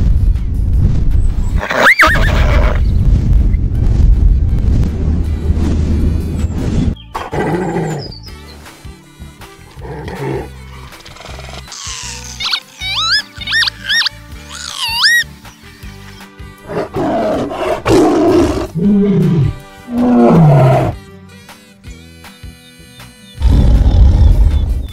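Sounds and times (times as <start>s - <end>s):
background music with bass line: 0.0s - 24.9s
tiger roar: 16.6s - 21.0s.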